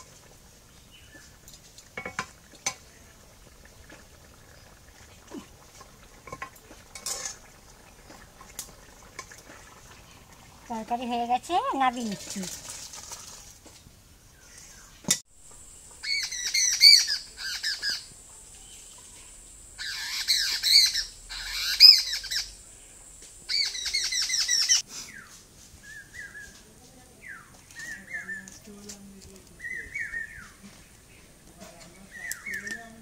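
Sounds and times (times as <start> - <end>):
birds squawking chatter: 16.0 - 19.2, 19.8 - 22.6, 23.5 - 25.4, 29.5 - 33.0.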